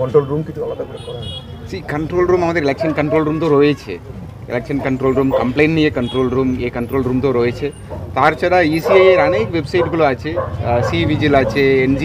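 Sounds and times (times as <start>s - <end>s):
man talking: 0.0s - 12.0s
street background noise: 0.0s - 12.0s.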